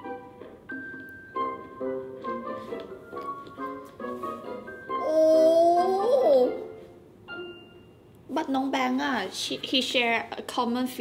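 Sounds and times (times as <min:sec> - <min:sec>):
woman's drawn-out wordless ooh: 0:05.0 - 0:06.7.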